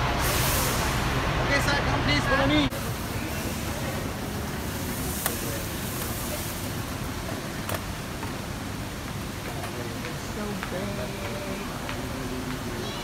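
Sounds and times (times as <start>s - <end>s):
outdoor background hiss: 0.0s - 13.0s.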